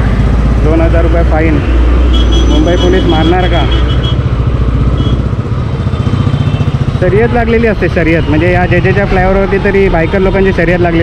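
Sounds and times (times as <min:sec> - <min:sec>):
motorcycle engine running: 0:00.0 - 0:09.0.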